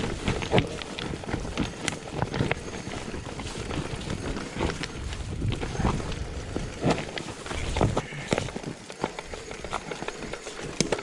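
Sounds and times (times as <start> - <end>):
bike knocks and rattles: 0.0 - 11.0
tyres rolling over stones: 0.0 - 11.0.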